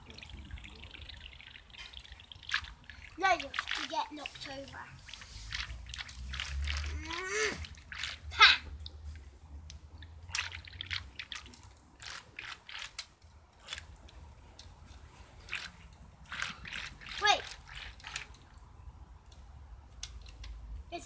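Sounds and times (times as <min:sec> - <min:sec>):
water splashing in paddling pool: 0:00.0 - 0:08.9, 0:10.0 - 0:13.0, 0:15.3 - 0:18.6
child calling out: 0:07.0 - 0:07.6, 0:08.3 - 0:08.7.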